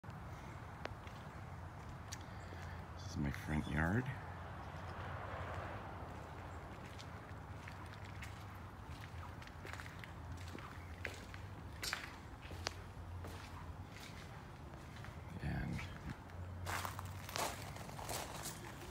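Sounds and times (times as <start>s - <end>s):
low outdoor hum: 0.0s - 18.9s
footsteps on concrete and tile: 6.1s - 15.1s.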